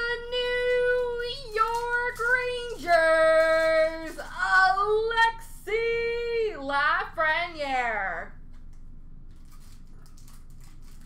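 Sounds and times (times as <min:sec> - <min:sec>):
person singing wordlessly: 0:00.0 - 0:06.5.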